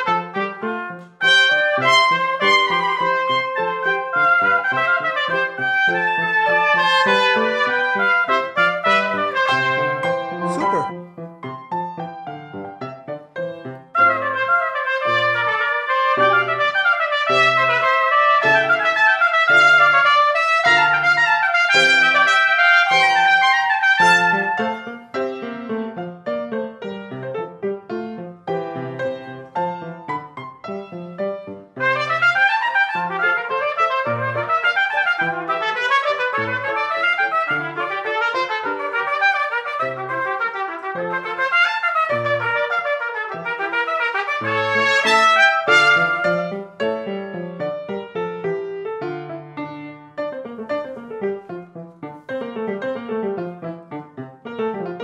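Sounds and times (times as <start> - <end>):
trumpets playing: 0.0 - 11.0, 14.0 - 24.8, 31.8 - 46.7
piano bass line: 0.0 - 55.0.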